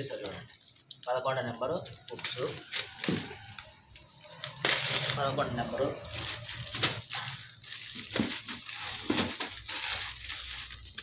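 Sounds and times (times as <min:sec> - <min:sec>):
rummaging in cardboard box: 0:06.1 - 0:11.0.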